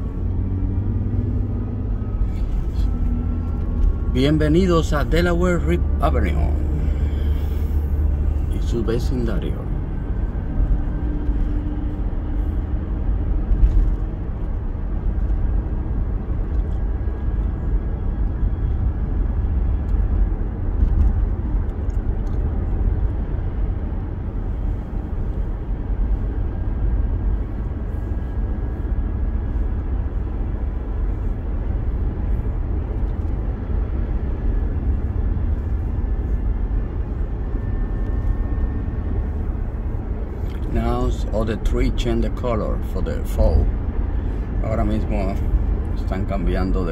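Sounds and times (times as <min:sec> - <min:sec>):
car driving heard from cabin: 0:00.0 - 0:46.9.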